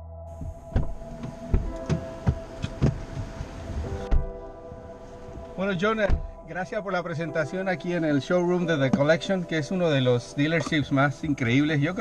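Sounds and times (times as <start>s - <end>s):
car door shutting: 0.4s - 6.4s.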